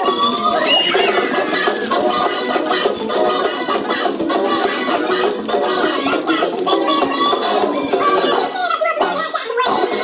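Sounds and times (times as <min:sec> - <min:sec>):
loud dance music: 0:00.0 - 0:10.0.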